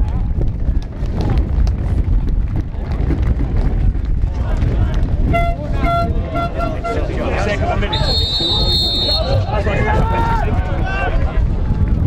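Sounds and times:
crowd voices: 2.6s - 12.0s
horn tooting short blasts: 5.3s - 7.2s, 8.0s - 9.5s.

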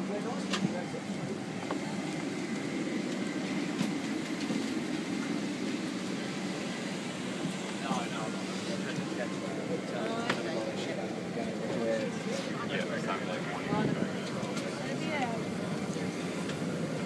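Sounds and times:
passengers chattering: 0.0s - 17.0s.

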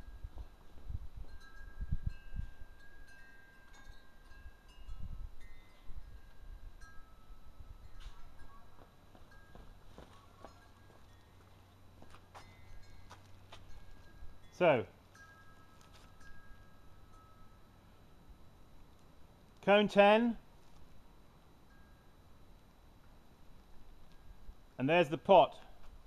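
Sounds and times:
wind chimes ringing: 1.2s - 18.3s, 21.6s - 22.3s.

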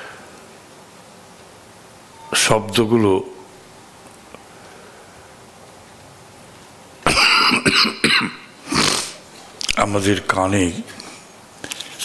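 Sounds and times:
man coughing: 7.0s - 9.1s.

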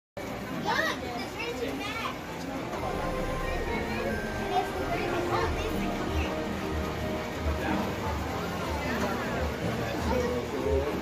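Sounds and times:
crowd chatter: 0.2s - 11.0s.

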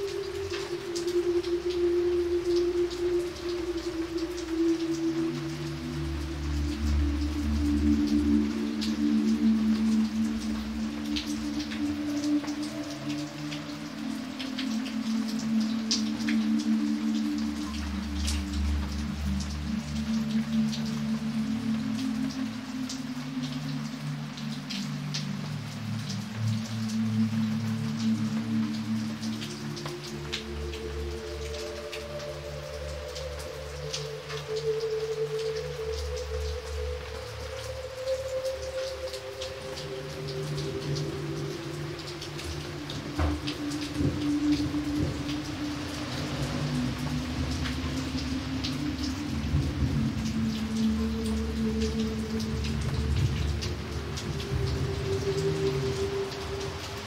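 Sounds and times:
rain on pavement: 0.0s - 57.0s
raindrops splashing: 0.0s - 57.0s
slow soft music: 0.0s - 57.0s.

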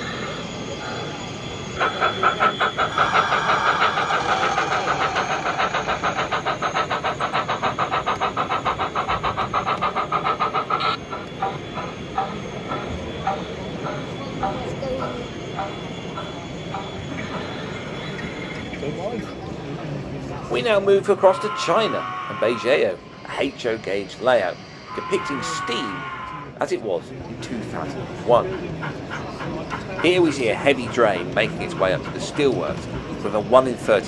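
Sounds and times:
model steam locomotive chuffing: 0.0s - 34.0s.

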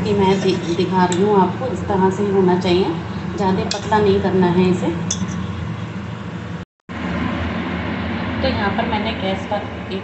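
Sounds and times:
background hum and rumble: 0.0s - 10.0s.

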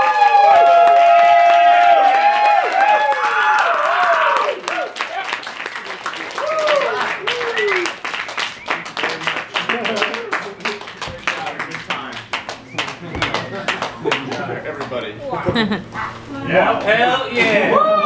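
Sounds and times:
hands clapping: 0.0s - 15.1s.

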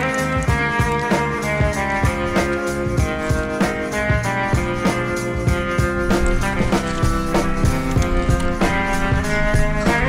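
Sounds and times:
instrumental music with drum beat: 0.0s - 10.0s.

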